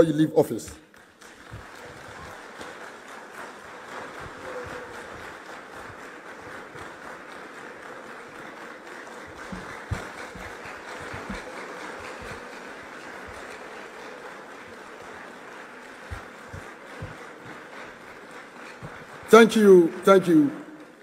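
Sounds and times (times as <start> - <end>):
audience applauding: 0.9 - 21.0
sharp knock: 9.5 - 11.5.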